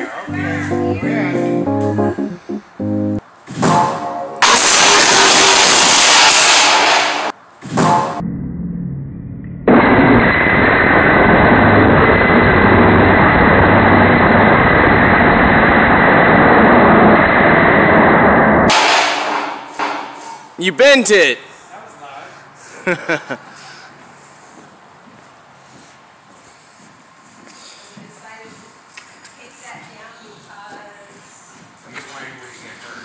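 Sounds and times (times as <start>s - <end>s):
long dull crashing noise: 0.4s - 20.2s
steel beam crashing onto concrete: 3.7s - 8.2s, 18.7s - 20.5s.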